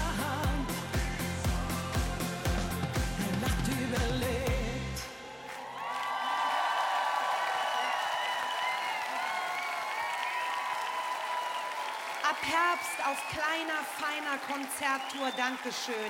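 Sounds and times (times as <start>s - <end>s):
live pop band playing: 0.0s - 5.0s
audience applause: 5.0s - 16.0s.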